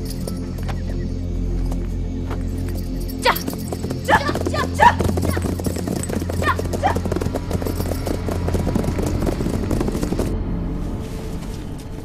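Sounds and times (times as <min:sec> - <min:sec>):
horse hooves clopping: 0:00.0 - 0:12.0
rider shouting: 0:03.2 - 0:05.6, 0:06.4 - 0:07.0.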